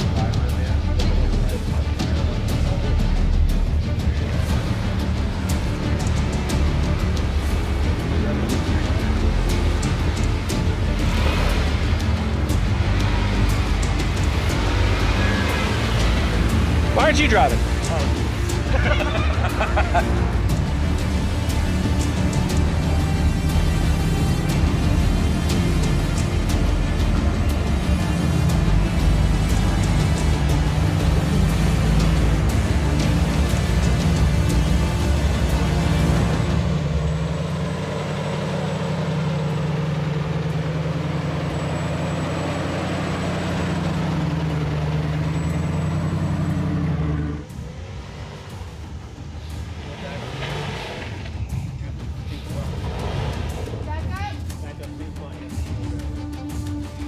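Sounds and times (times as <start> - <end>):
background music: 0.0 - 57.0
off-road engine under load: 0.0 - 57.0.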